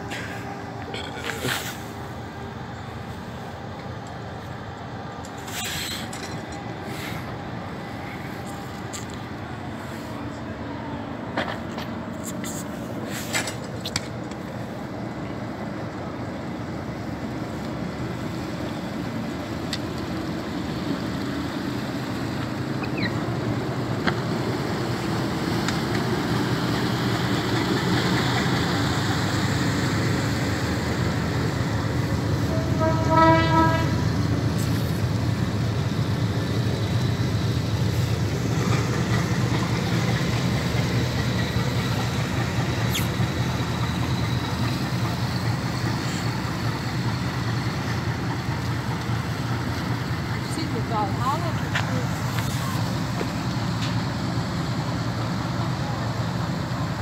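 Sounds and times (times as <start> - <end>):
boat engines droning: 0.0 - 57.0
boat horn blast: 32.4 - 34.1.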